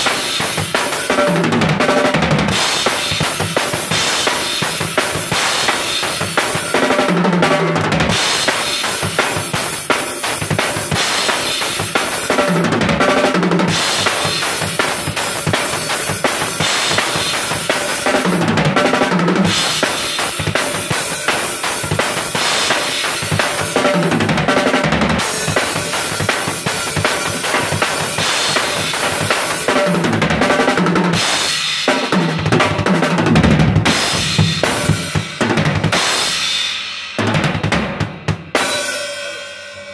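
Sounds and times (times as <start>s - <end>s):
drum kit beat: 0.0s - 39.4s.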